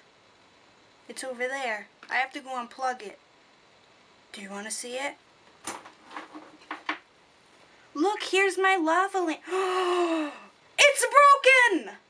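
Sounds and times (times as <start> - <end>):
soft knocks and rustles: 5.6 - 7.0.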